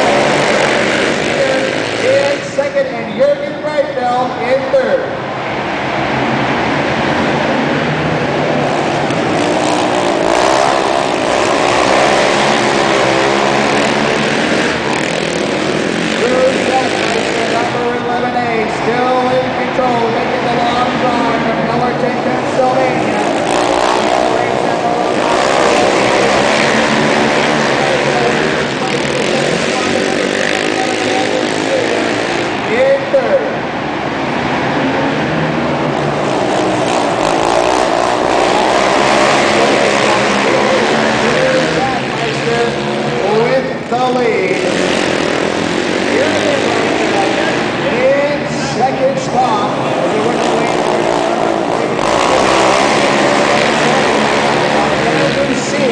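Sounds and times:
racing quad engines revving: 0.0 - 55.9.

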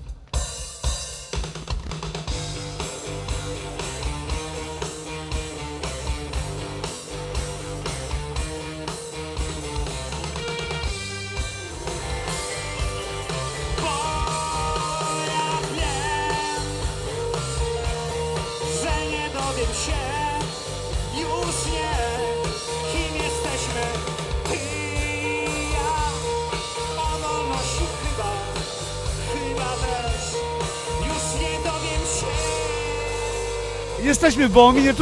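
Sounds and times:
rock band playing: 0.0 - 35.0
man singing: 13.8 - 16.8, 18.6 - 35.0.

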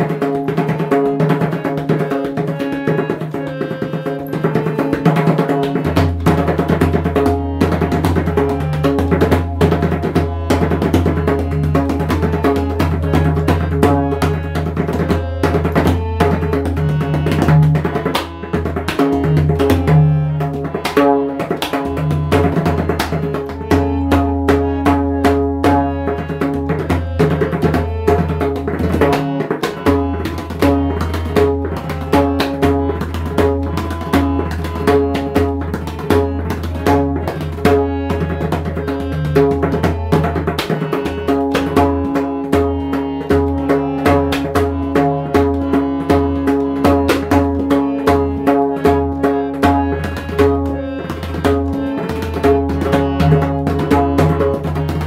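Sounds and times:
barrel drum playing: 0.0 - 55.0.

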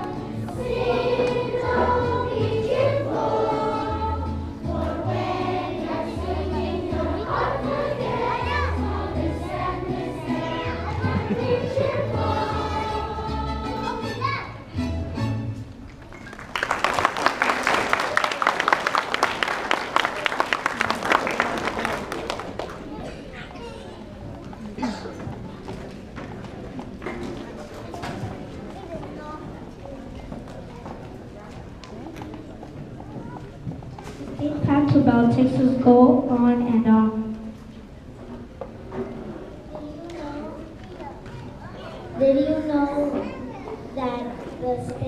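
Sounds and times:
children's choir singing: 0.0 - 14.6
murmur of young voices: 0.0 - 15.7, 19.7 - 45.0.

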